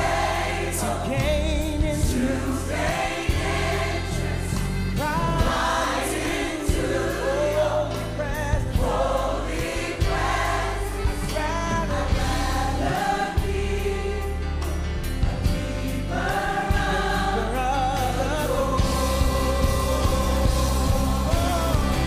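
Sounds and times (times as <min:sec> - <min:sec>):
choir singing gospel music: 0:00.0 - 0:22.0.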